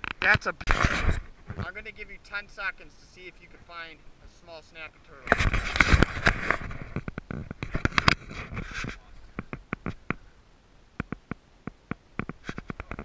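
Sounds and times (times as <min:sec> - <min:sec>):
rubbing and scraping on microphone: 0:00.0 - 0:10.3, 0:11.0 - 0:13.0
sharp clicks and taps: 0:11.0 - 0:13.0.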